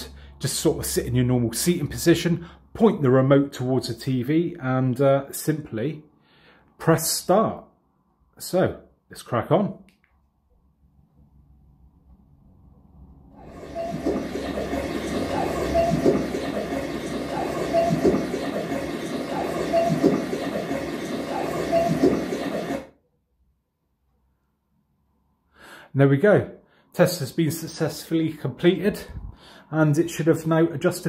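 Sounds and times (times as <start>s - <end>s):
tv speakers playing rushing noise: 13.4s - 22.9s.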